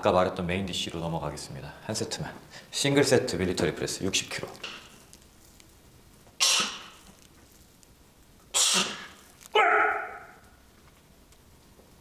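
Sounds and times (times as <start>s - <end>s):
man grunting: 9.6s - 10.2s.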